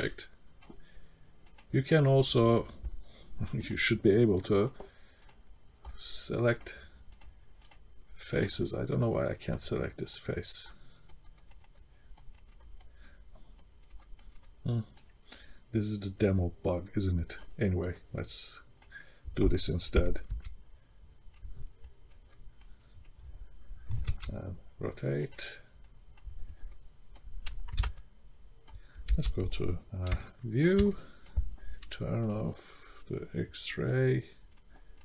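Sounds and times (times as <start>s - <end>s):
mouse and keyboard clicking: 11.0s - 12.9s, 13.6s - 15.1s, 23.9s - 24.4s, 25.3s - 28.0s
mouse and keyboard clicks: 23.9s - 24.4s, 26.7s - 28.0s.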